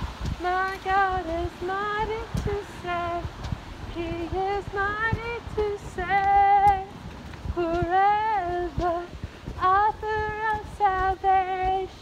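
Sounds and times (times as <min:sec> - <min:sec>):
woman singing unaccompanied: 0:00.4 - 0:12.0.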